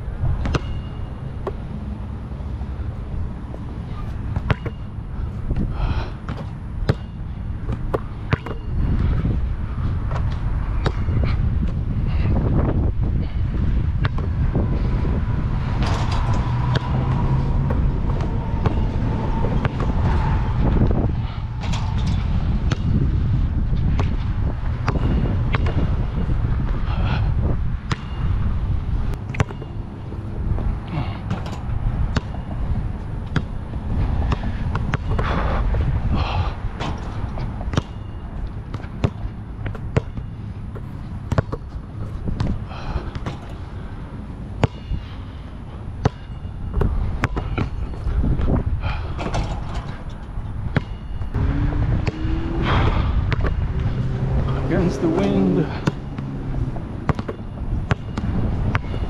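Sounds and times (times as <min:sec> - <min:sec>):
wind buffeting microphone: 0:00.0 - 0:59.0
basketball bouncing on hard court: 0:04.4 - 0:04.8, 0:06.3 - 0:09.1, 0:22.6 - 0:22.9, 0:29.3 - 0:29.7, 0:32.1 - 0:32.5, 0:37.7 - 0:41.8, 0:44.6 - 0:44.9, 0:46.0 - 0:47.8, 0:50.7 - 0:51.0, 0:53.3 - 0:53.6, 0:57.1 - 0:59.0.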